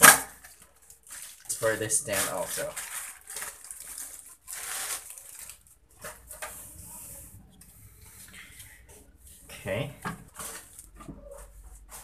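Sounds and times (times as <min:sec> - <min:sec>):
plastic packaging rustling: 0:00.0 - 0:07.0, 0:07.9 - 0:12.0.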